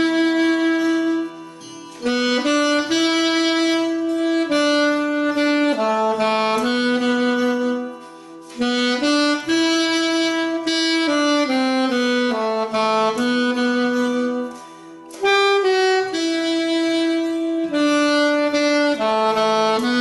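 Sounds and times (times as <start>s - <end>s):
alto saxophone playing a hymn: 0.0s - 20.0s
quiet musical backing: 0.0s - 20.0s.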